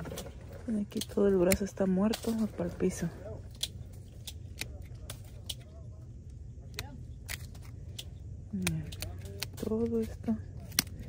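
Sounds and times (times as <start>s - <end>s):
scissors snipping: 0.9s - 2.6s, 3.5s - 5.8s, 6.7s - 11.0s.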